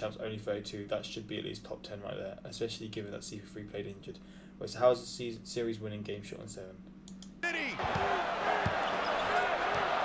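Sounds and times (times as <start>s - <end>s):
commentator talking: 7.4s - 7.8s
arena crowd noise: 7.4s - 10.0s
basketball dribbling: 7.8s - 10.0s.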